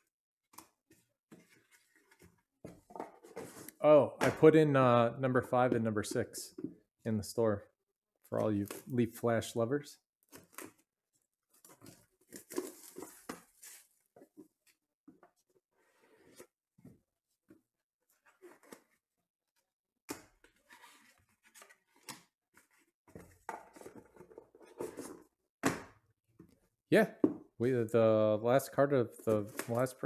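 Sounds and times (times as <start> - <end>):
cards and box being handled: 11.5 - 14.7, 20.4 - 25.3, 29.2 - 30.0.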